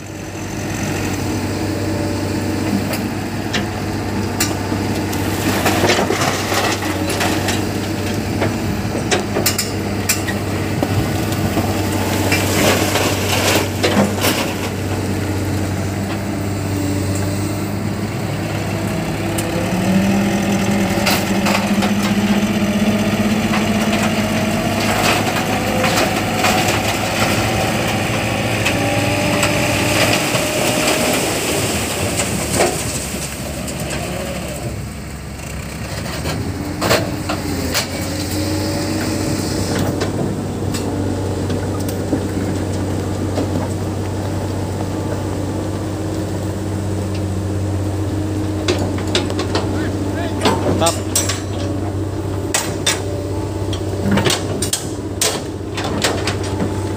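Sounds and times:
diesel truck engine running: 0.0 - 56.9
rock load sliding out: 3.0 - 34.9.

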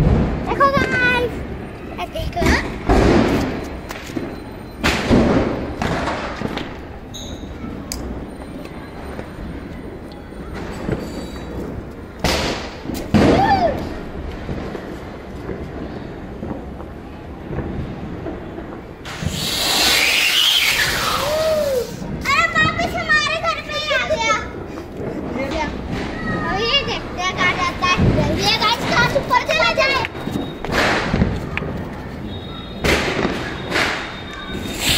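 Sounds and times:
firecracker bangs: 0.0 - 0.9, 2.4 - 8.2, 10.5 - 16.7, 17.5 - 22.9, 24.6 - 34.9
firework hissing: 19.0 - 22.4, 33.0 - 34.9
children shouting excitedly: 20.6 - 24.6.

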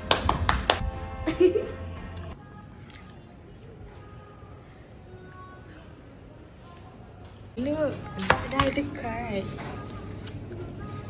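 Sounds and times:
woman clapping hands: 0.0 - 0.9
background music: 0.0 - 11.0.

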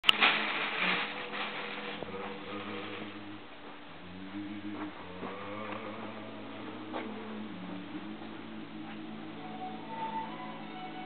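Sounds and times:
plastic bag crinkling: 0.0 - 3.8.

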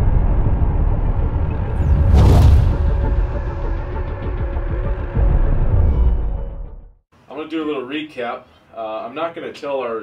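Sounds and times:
deep rumble of explosion boom: 0.0 - 5.1.

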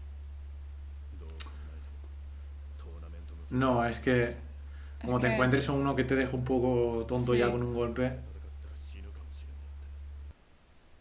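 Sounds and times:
steady low hum: 0.0 - 11.0
sharp click: 1.2 - 1.6.

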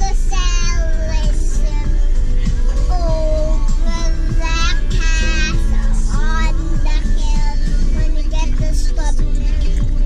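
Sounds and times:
child singing: 0.0 - 2.1, 2.8 - 10.0
low car hum: 0.0 - 10.0
pop song on car stereo: 0.0 - 10.0.

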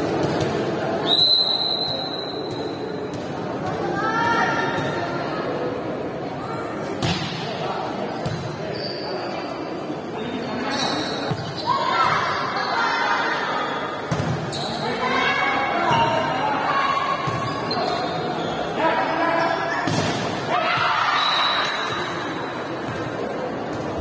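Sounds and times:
voices shouting and chattering: 0.0 - 24.0.

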